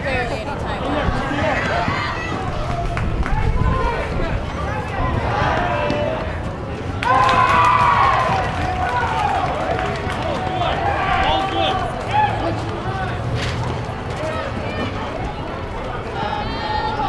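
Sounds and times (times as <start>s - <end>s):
players and spectators shouting: 0.8s - 17.0s.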